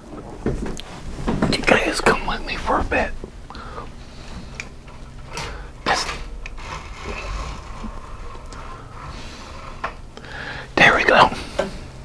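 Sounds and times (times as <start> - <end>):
low rustling: 0.0 - 12.0.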